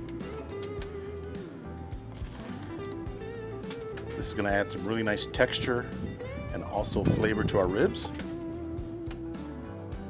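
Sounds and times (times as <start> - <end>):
guitar bending notes: 0.0 - 1.6, 2.4 - 9.5
bass line: 1.9 - 10.0.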